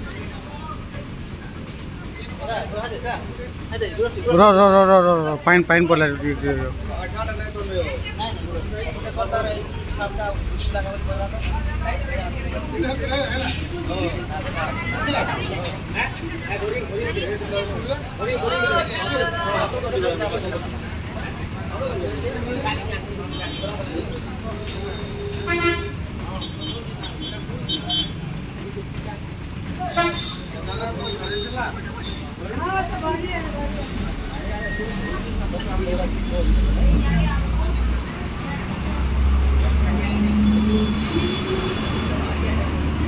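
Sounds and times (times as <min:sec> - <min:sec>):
people talking indistinctly: 0:00.0 - 0:43.0
traffic rumble: 0:00.0 - 0:43.0
vehicle horns honking: 0:25.0 - 0:28.2, 0:29.9 - 0:31.8, 0:40.2 - 0:42.4.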